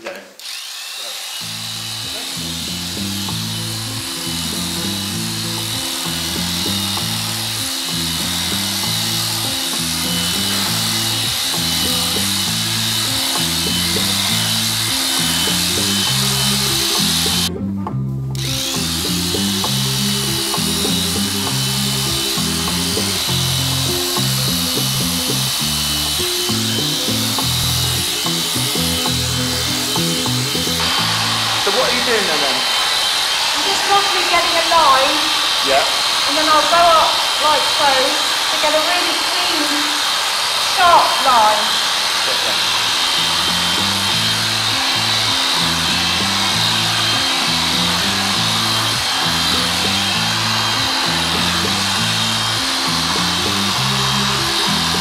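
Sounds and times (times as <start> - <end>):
electric horse clippers whining: 0.0 - 55.0
background music with bass line: 1.5 - 32.4, 43.2 - 55.0.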